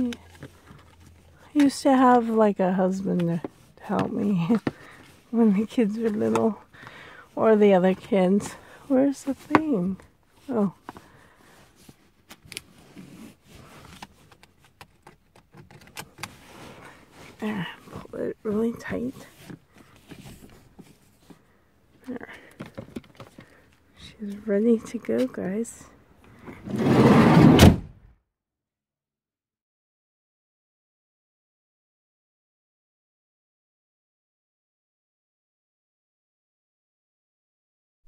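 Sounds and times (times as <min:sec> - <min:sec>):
seatbelt webbing rustling: 0:00.0 - 0:02.4, 0:03.2 - 0:25.6
sliding door rolling on track: 0:26.6 - 0:27.8
door shutting with a bang: 0:27.3 - 0:28.0.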